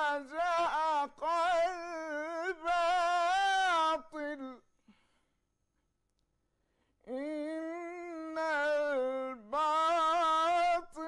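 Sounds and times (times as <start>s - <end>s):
person reciting melodically: 0.0s - 4.6s, 7.1s - 11.0s.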